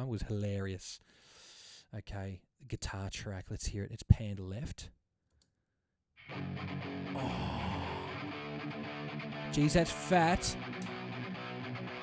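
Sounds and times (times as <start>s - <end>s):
distorted electric guitar: 6.2s - 12.0s.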